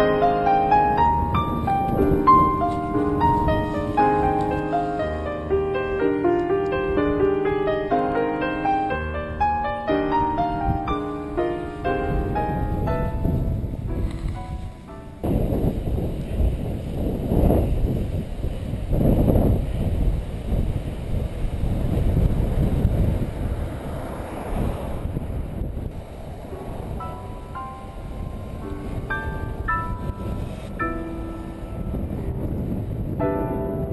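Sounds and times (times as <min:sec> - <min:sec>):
piano music: 0:00.0 - 0:15.7, 0:26.5 - 0:33.9
wind rumbling on microphone: 0:00.0 - 0:33.9.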